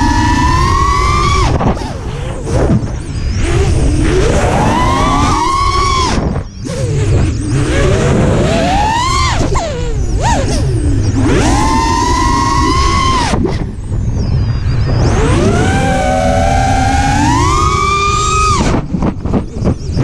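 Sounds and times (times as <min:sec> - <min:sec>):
drone motors whining: 0:00.0 - 0:20.0
wind rumble: 0:00.0 - 0:20.0.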